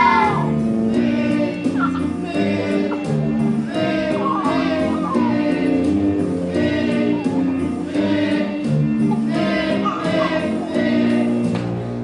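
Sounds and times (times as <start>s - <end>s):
children's choir singing: 0.0s - 11.7s.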